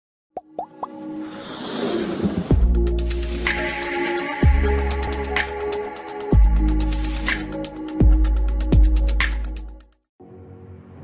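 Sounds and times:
building music: 0:00.7 - 0:11.0.

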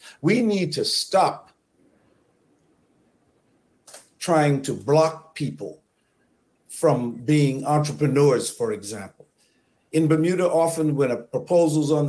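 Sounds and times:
man speaking: 0:00.0 - 0:01.5, 0:03.9 - 0:05.8, 0:06.7 - 0:09.2, 0:10.0 - 0:12.0.

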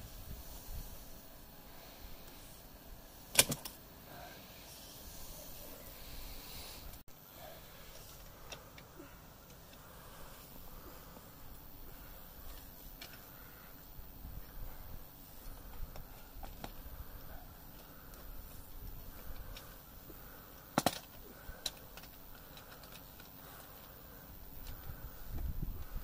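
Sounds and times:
sharp metal click: 0:03.3 - 0:03.8.

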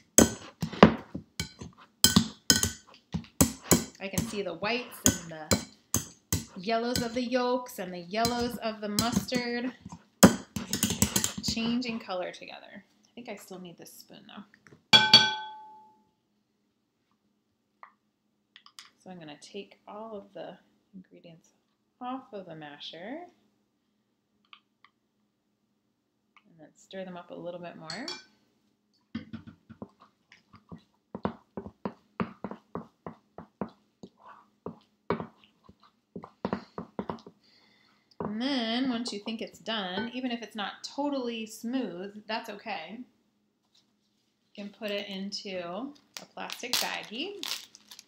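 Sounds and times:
spoon stirring in glass bowl: 0:00.2 - 0:07.2, 0:08.2 - 0:09.5, 0:10.2 - 0:11.9
metal spoon clinking on bowl: 0:01.4 - 0:02.8, 0:10.2 - 0:11.5, 0:15.0 - 0:15.9, 0:27.9 - 0:28.3.

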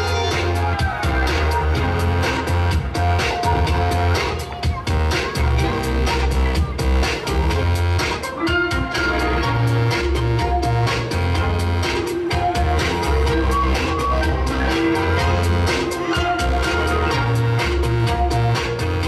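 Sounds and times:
dance music over loudspeakers: 0:00.0 - 0:19.0.

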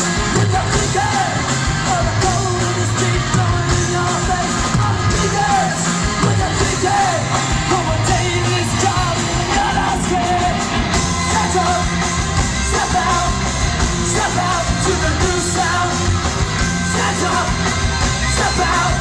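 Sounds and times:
bass guitar: 0:00.0 - 0:19.0
drums: 0:00.0 - 0:19.0
electric guitars: 0:00.0 - 0:19.0
sung vocals: 0:00.0 - 0:19.0.

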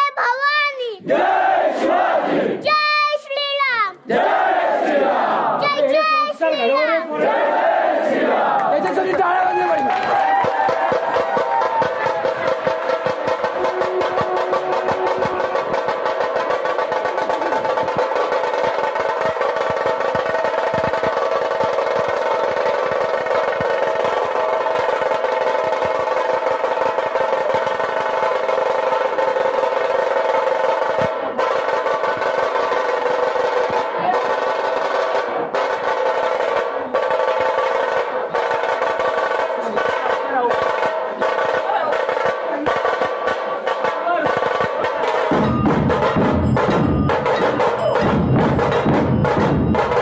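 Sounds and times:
fast drum roll: 0:08.3 - 0:50.0
steady held tones: 0:12.1 - 0:18.3.

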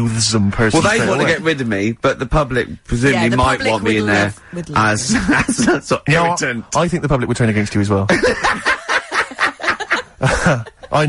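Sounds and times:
people laughing: 0:05.1 - 0:05.9, 0:08.1 - 0:11.0.

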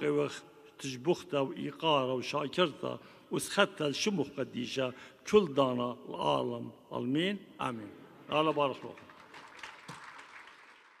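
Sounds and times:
audience applause: 0:08.9 - 0:11.0.

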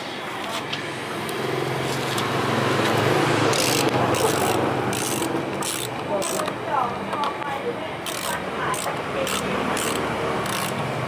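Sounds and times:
screwdriver scraping a screw: 0:03.5 - 0:06.6, 0:08.0 - 0:10.8.

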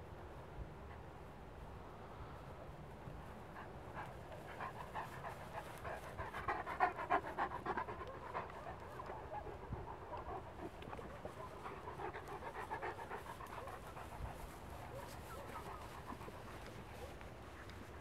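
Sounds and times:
dog panting: 0:03.4 - 0:18.0.

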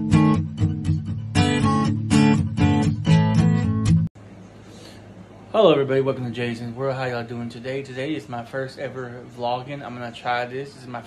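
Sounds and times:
strummed acoustic guitar chords: 0:00.0 - 0:04.1.

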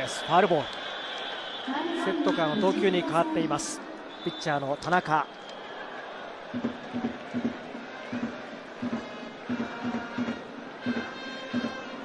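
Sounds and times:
crowd cheering: 0:00.0 - 0:12.0
drums beating: 0:06.5 - 0:12.0
trumpets: 0:09.6 - 0:12.0.

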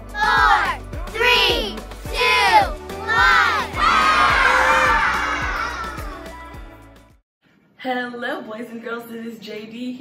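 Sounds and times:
upbeat music with steady beat: 0:00.0 - 0:07.2
children cheering: 0:02.2 - 0:06.3.

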